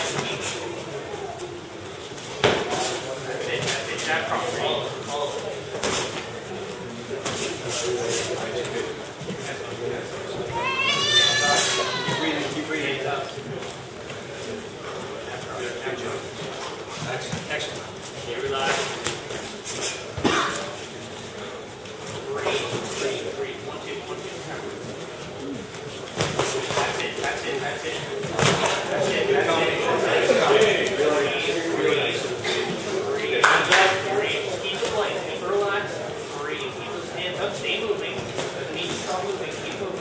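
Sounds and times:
background chatter: 0.0s - 40.0s
murmur of voices: 0.0s - 40.0s
high-pitched vocal cry: 10.5s - 12.6s.

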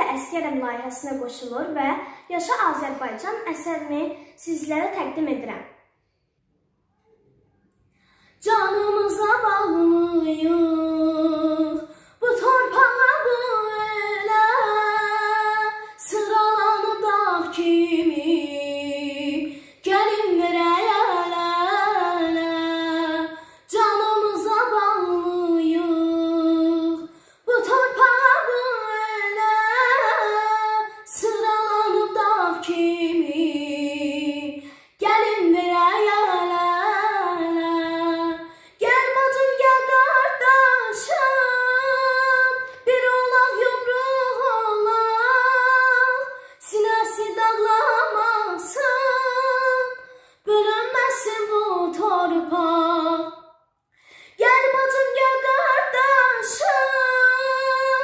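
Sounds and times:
breaths between phrases: 2.0s - 2.3s, 4.1s - 4.4s, 7.9s - 8.4s, 23.3s - 23.7s, 27.1s - 27.5s, 50.0s - 50.4s, 53.9s - 54.4s
girl singing unaccompanied: 8.4s - 53.4s, 54.3s - 58.0s.

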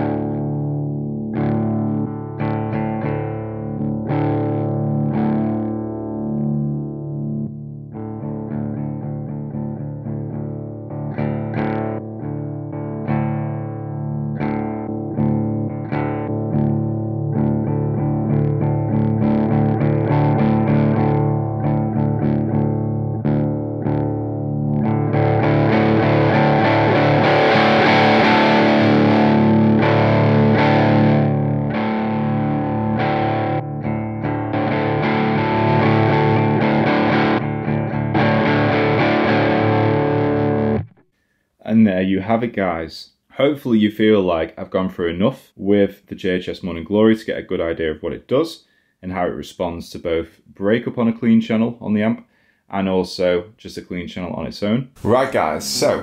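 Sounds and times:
overdriven electric guitar chords: 0.0s - 41.0s.

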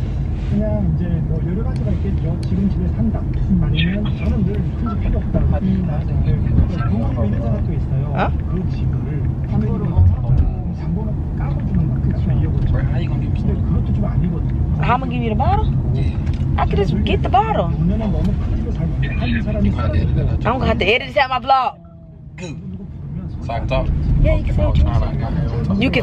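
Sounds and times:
car cabin rumble: 0.0s - 26.0s
voices talking: 1.1s - 26.0s.

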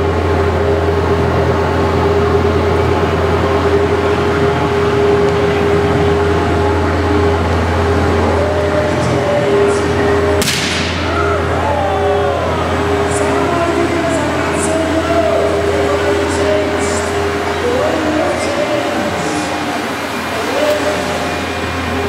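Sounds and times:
electric fans running: 0.0s - 22.0s
sharp crack: 10.4s - 11.2s.

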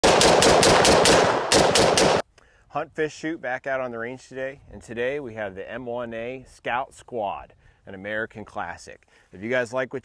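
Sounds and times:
rifle shots in rapid string: 0.0s - 2.2s.

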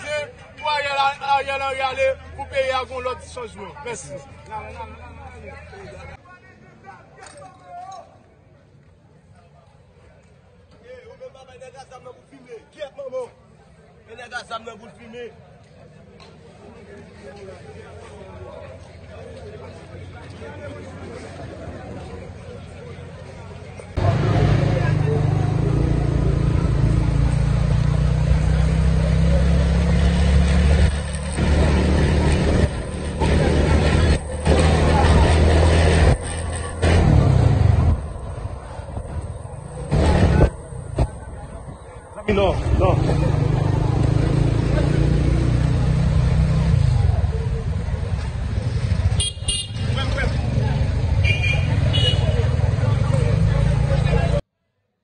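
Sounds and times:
faint voices: 0.0s - 30.2s, 31.3s - 54.4s
vehicle rumble: 15.4s - 54.4s
heavy low rumble: 30.6s - 44.2s.

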